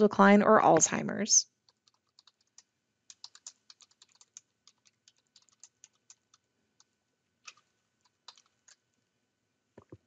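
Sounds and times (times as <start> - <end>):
typing on computer keyboard: 1.6 - 8.8.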